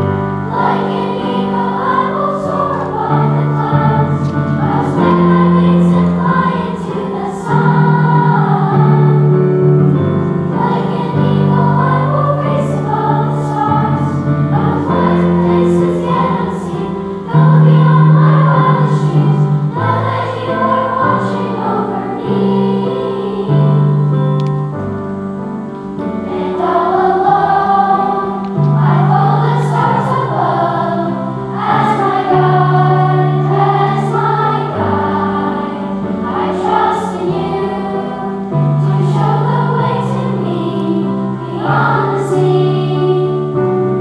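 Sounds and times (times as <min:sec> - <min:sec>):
children's choir singing: 0:00.0 - 0:44.0.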